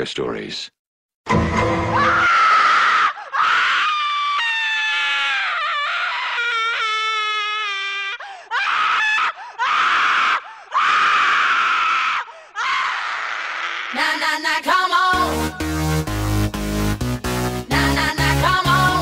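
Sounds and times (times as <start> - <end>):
downward sliding wail: 1.3 - 7.9
person screaming: 2.0 - 14.0.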